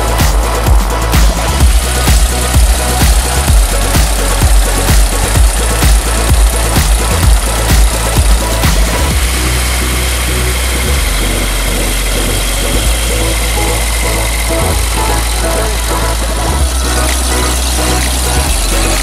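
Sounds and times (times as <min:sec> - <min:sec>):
propeller aircraft engines droning: 0:00.0 - 0:19.0.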